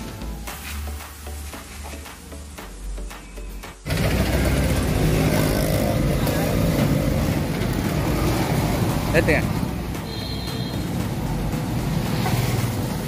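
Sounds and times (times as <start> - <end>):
background music: 0.0 - 13.0
vehicle traffic: 0.0 - 13.0.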